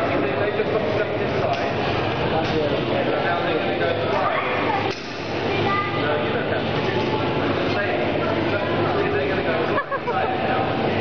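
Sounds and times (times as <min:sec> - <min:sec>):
voices chattering in a hall: 0:00.0 - 0:11.0.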